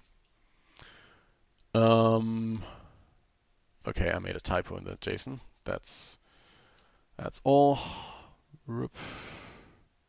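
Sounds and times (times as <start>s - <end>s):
man murmuring: 1.8s - 2.8s, 7.6s - 9.2s
breathy sigh: 7.8s - 9.8s.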